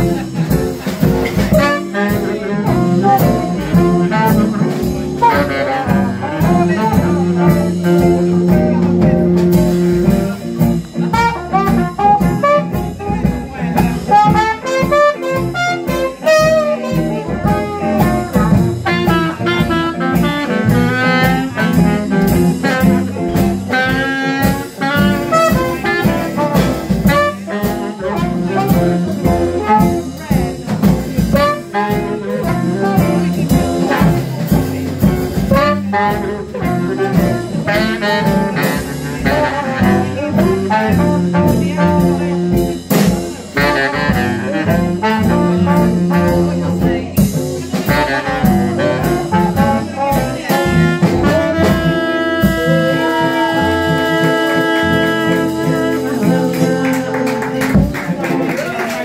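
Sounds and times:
jazz band playing: 0.0 - 59.0
long low horn note: 49.2 - 56.9.

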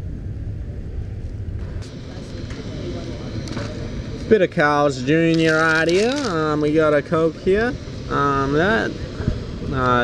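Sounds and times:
low outdoor rumble: 0.0 - 10.0
faint voices: 0.6 - 10.0.

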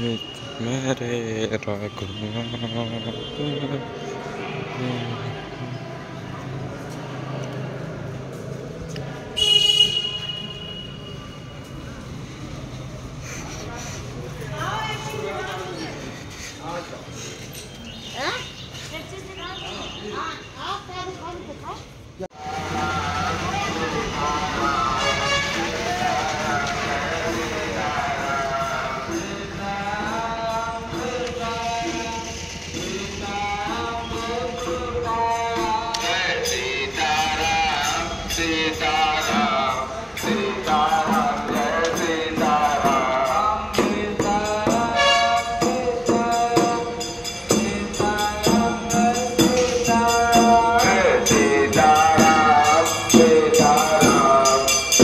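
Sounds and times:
people talking: 0.0 - 5.6
high-pitched horn toot: 45.0 - 45.6.

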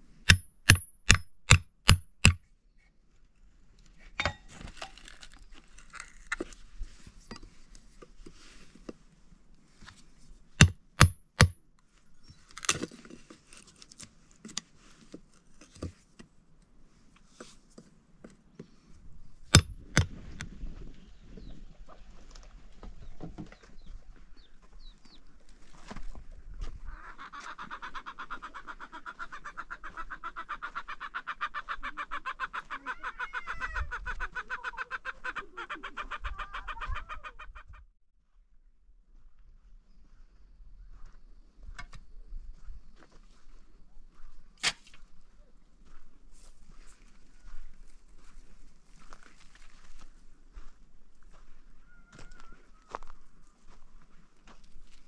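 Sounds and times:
hammer striking wood chisel: 0.3 - 2.4, 10.6 - 11.6, 19.5 - 20.1.

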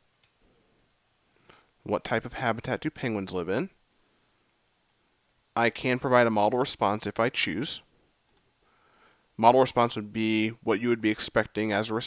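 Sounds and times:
person speaking: 1.8 - 3.8, 5.6 - 7.9, 9.4 - 12.0.

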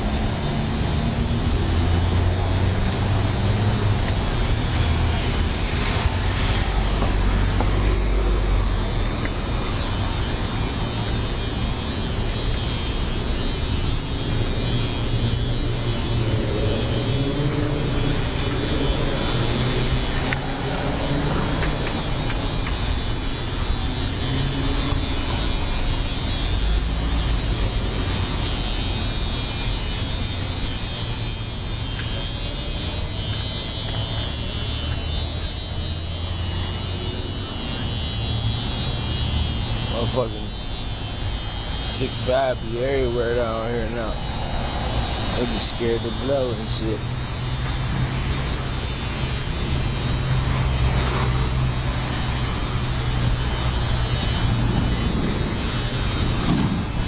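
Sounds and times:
low street rumble: 0.0 - 57.0
passing traffic: 0.0 - 57.0.

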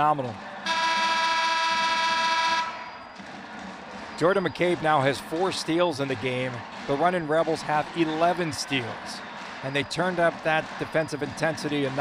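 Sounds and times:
low arena noise: 0.0 - 12.0
arena horn steady tone: 0.6 - 3.1.

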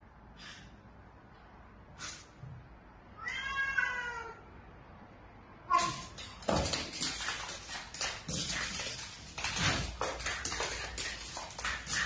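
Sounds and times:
cat short cry: 3.2 - 4.4
cat meowing: 3.2 - 4.5
cat and dog tussling: 5.7 - 12.0.

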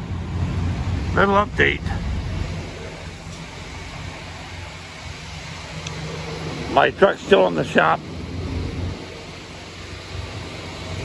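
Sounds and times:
diesel trucks idling: 0.0 - 11.0
outdoor noise hiss: 0.0 - 11.0.

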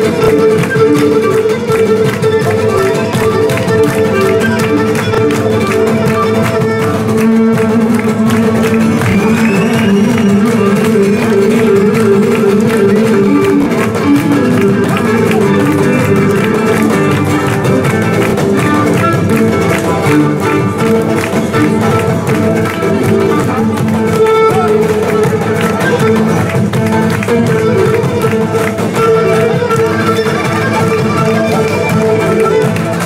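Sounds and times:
plucked strummed lute: 0.0 - 33.0.

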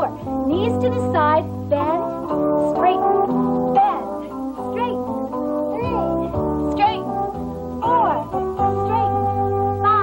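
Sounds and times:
upbeat exercise music with horns: 0.0 - 10.0.

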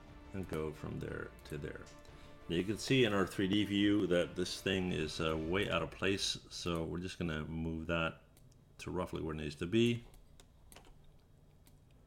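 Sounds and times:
keyboard and mouse clicks: 0.4 - 1.8, 10.0 - 12.0.

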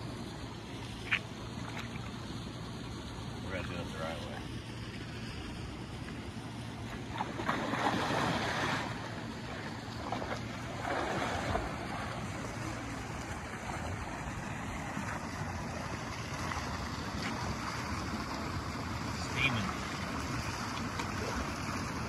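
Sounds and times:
water sloshing and swishing: 0.0 - 22.0.

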